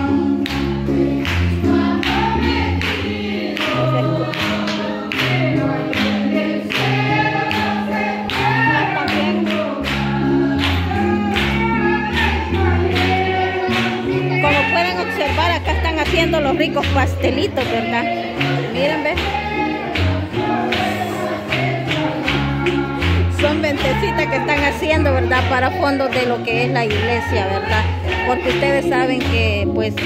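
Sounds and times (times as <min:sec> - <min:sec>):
group singing gospel: 0:00.0 - 0:30.0
bass line: 0:05.2 - 0:30.0.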